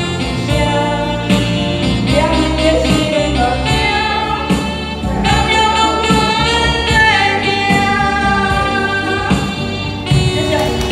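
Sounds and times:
karaoke backing track: 0:00.0 - 0:10.9
woman singing into a microphone: 0:00.0 - 0:10.9.

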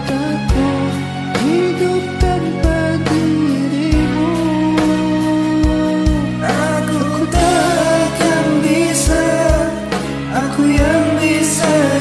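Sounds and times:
karaoke backing track with drums: 0:00.0 - 0:12.0.

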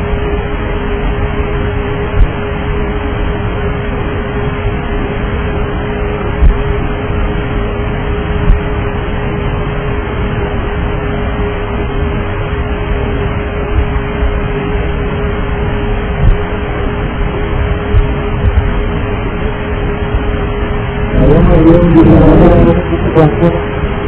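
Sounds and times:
constant hum: 0:00.0 - 0:24.0
aircraft noise rushing: 0:13.1 - 0:24.0.

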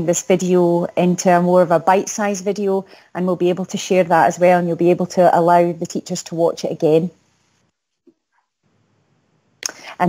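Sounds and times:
woman speaking: 0:00.0 - 0:07.1, 0:09.6 - 0:10.0.

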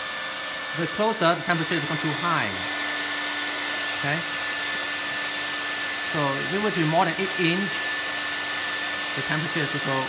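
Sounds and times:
hair dryer running: 0:00.0 - 0:10.0.

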